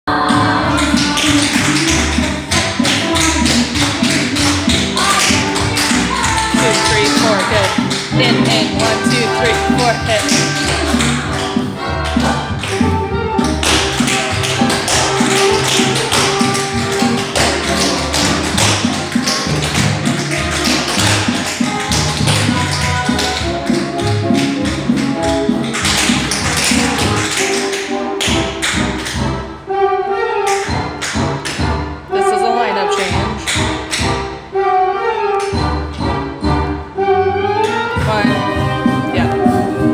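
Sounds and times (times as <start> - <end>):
recorded music with steady beat: 0.1 - 32.2.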